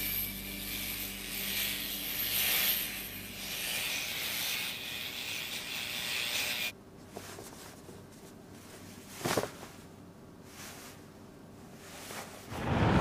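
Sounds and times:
electric shaver rasping buzz: 0.0 - 6.7.

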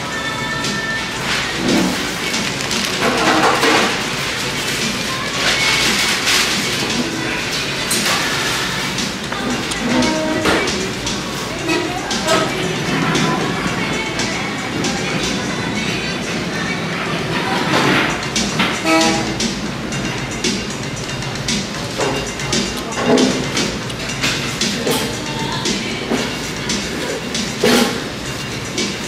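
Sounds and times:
background music with vocals: 0.0 - 29.0
plastic bag crinkling: 1.4 - 4.8.

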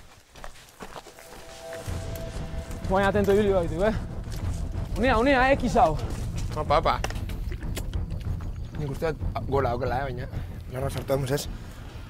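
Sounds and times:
footsteps on stone path: 0.0 - 9.3
background music held tone: 1.0 - 12.0
low bass line: 1.9 - 10.7.

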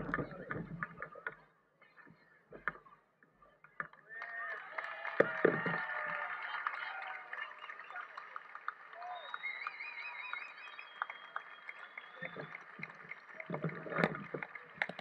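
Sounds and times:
crowd applauding and cheering: 4.1 - 15.0
high warbling whistle-like tone: 9.3 - 12.4.

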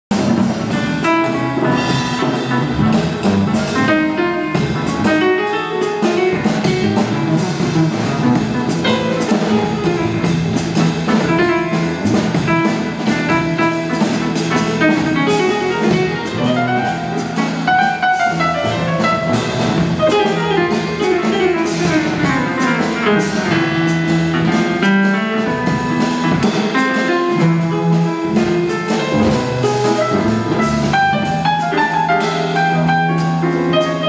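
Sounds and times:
drums keeping time: 0.1 - 34.0
jazz keyboard solo: 0.1 - 34.0.

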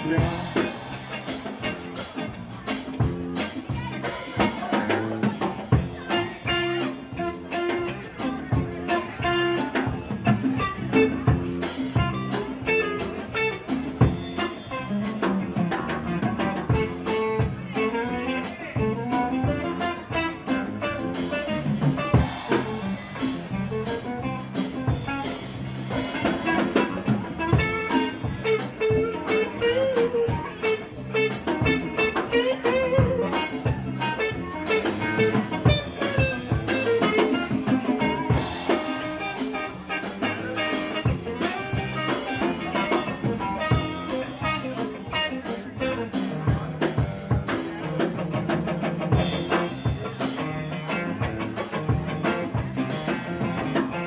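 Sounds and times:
drum kit steady beat: 0.0 - 54.0
electric guitar bending notes: 0.0 - 54.0.

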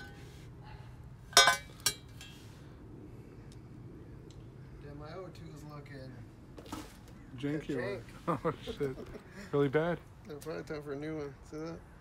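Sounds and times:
metal-on-metal clinks: 1.4 - 2.4.

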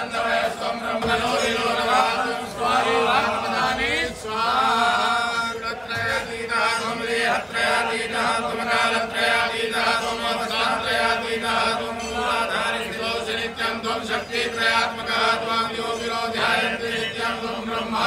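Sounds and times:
men chanting mantras: 0.0 - 18.0.

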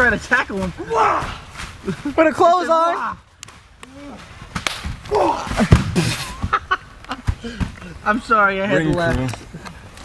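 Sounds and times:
sharp smacks: 3.4 - 6.0.

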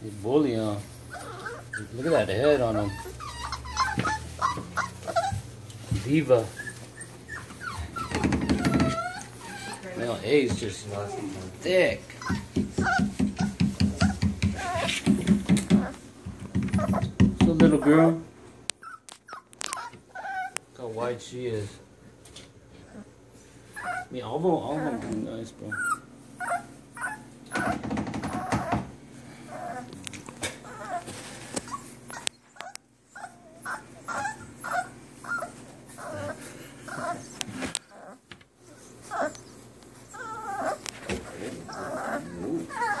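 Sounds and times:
rustling of wood shavings: 0.0 - 8.1
puppies whimpering: 0.2 - 16.0, 16.8 - 20.9, 22.8 - 43.0.

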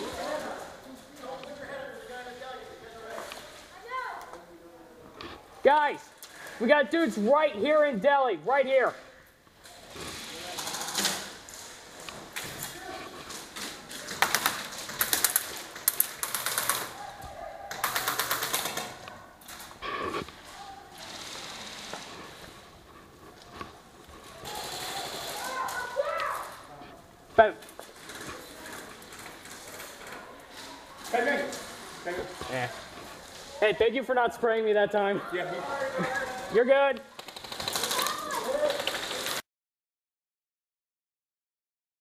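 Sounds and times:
airsoft gun full-auto burst: 14.1 - 17.0, 17.7 - 19.0, 20.9 - 22.4, 24.4 - 25.6, 37.2 - 38.1.

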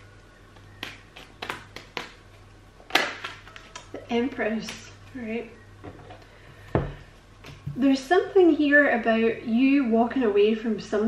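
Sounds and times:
cards being shuffled: 0.5 - 5.1.

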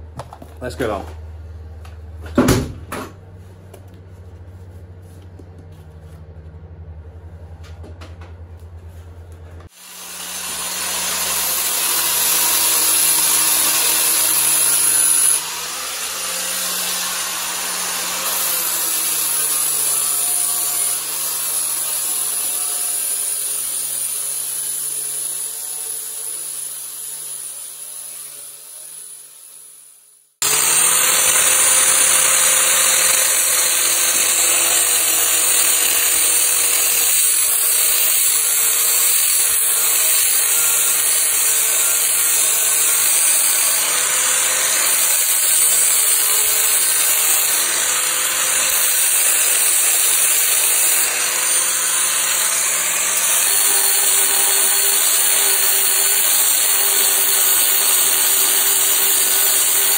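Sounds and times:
angle grinder grinding steel: 9.7 - 59.9.

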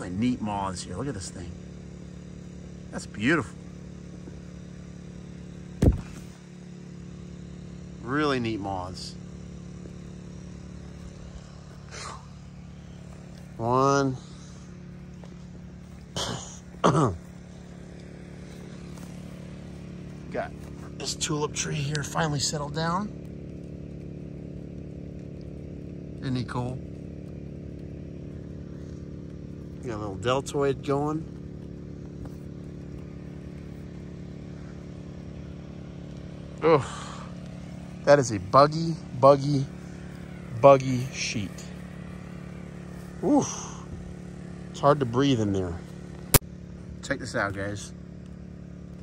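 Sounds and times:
generator engine hum: 0.0 - 49.0
sharp knock: 5.8 - 6.3.

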